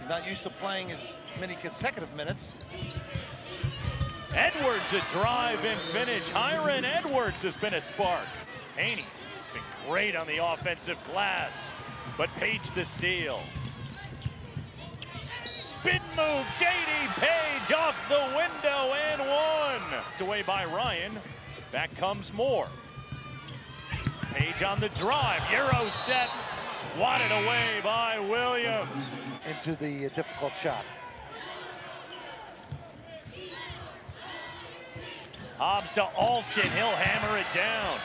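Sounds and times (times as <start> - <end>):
murmur of crowd: 0.0 - 38.0
sneaker squeak: 2.5 - 4.3, 13.4 - 15.9, 21.2 - 21.9, 22.6 - 26.6, 32.1 - 34.2.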